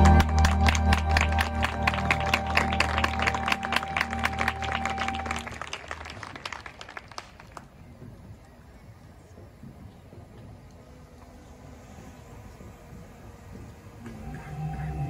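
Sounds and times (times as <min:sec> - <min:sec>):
marching band sustained chord: 0:00.0 - 0:07.3, 0:11.1 - 0:15.0
audience applauding: 0:00.0 - 0:07.9.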